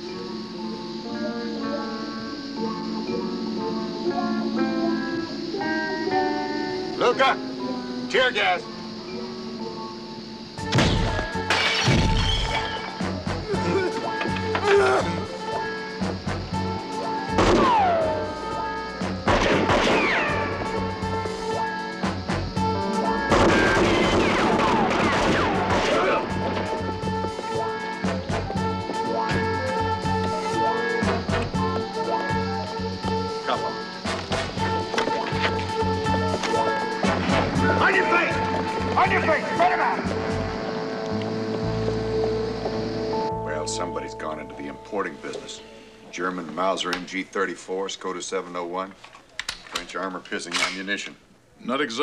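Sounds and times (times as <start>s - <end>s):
background score music: 0.0s - 52.0s
rapid rifle gunfire: 23.3s - 26.2s.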